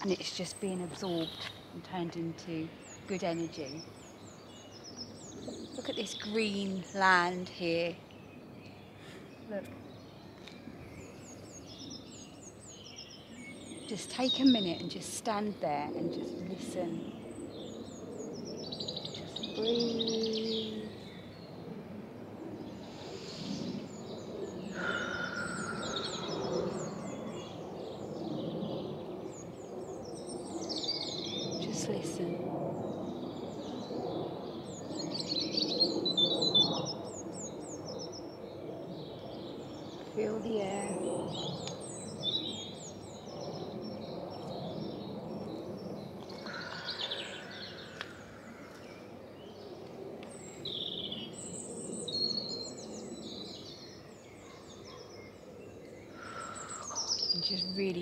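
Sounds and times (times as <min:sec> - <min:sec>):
birds singing and chirping: 0:00.0 - 0:58.0
low countryside background rush: 0:00.0 - 0:58.0.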